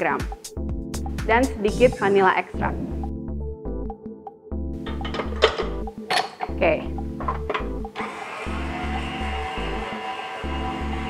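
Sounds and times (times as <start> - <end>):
background music with bass beat: 0.2 - 6.1, 6.8 - 8.0
stand mixer motor running: 8.0 - 11.0.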